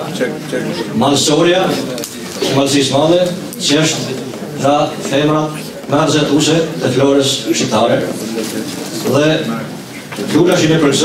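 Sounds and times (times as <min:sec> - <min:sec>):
man speaking into a microphone: 0:00.0 - 0:11.0.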